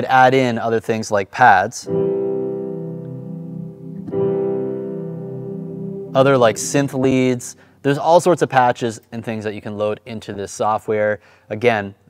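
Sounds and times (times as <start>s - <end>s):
sustained piano chords with pad: 1.9s - 8.0s.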